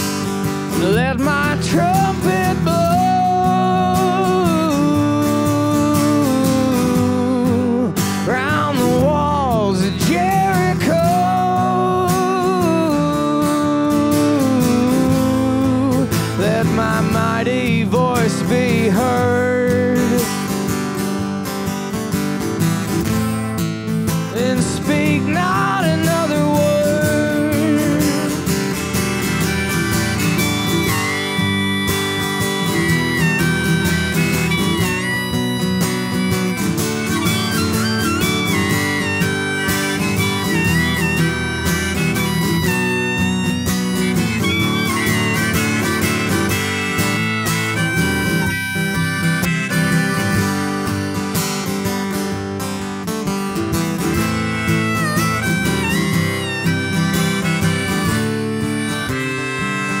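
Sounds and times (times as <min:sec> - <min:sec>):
harmonica solo: 0:00.0 - 1:00.0
strummed acoustic guitar: 0:00.0 - 1:00.0.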